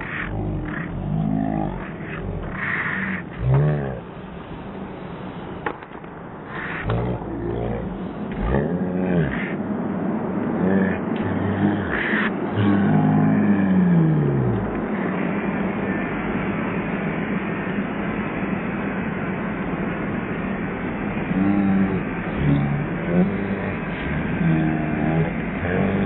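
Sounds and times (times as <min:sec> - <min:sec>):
slowed deep voices: 0:00.0 - 0:26.0.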